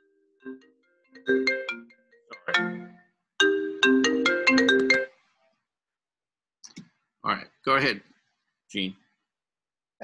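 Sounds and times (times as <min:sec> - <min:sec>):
phone ringtone: 0:00.0 - 0:05.2.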